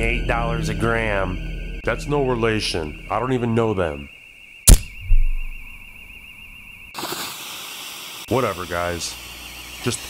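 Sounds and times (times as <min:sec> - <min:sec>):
sharp click: 0:04.7 - 0:05.5
low thump: 0:04.7 - 0:05.8
steady hiss: 0:07.0 - 0:10.0.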